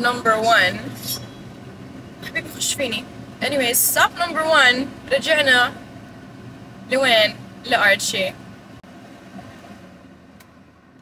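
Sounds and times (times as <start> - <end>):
car road and engine noise: 0.0 - 11.0.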